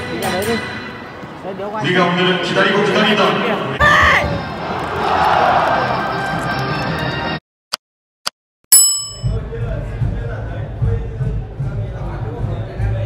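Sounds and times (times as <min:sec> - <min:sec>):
stadium ambience: 0:00.0 - 0:07.2
loud bell-like ding: 0:08.7 - 0:09.4.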